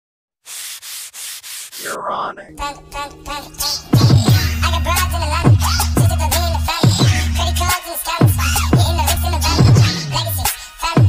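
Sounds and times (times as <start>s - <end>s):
scratchy rubbing strokes: 0.4s - 2.2s.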